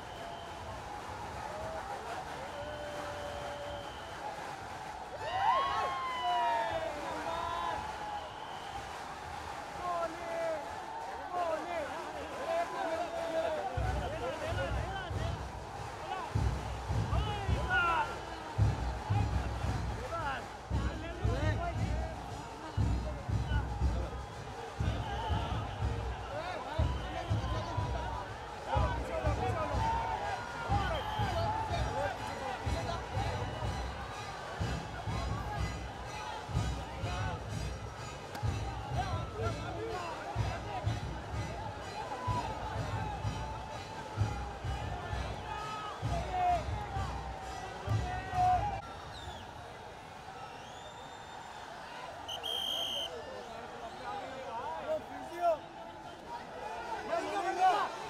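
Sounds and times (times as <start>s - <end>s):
music: 0.0s - 53.1s
crowd talking and shouting: 0.0s - 58.0s.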